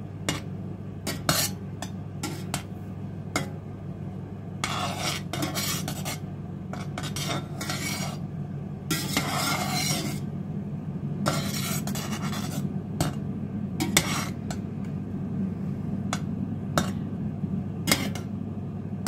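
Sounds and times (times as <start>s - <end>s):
metal spoon scraping a saucepan: 1.1s - 1.6s, 4.6s - 8.2s, 8.9s - 10.3s, 11.2s - 13.2s, 13.8s - 14.6s, 17.9s - 18.3s.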